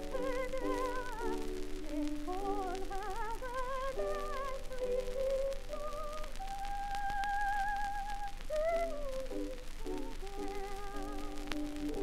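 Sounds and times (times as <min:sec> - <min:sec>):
record surface crackle: 0:00.0 - 0:12.0
soprano singing with vibrato: 0:00.0 - 0:12.0.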